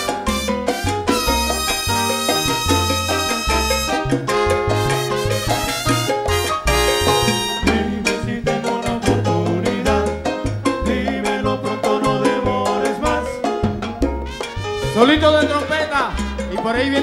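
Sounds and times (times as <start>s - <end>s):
brass riffs: 0.0s - 8.1s, 14.2s - 16.5s
bass line: 0.0s - 17.0s
timbales and congas percussion: 0.0s - 17.0s.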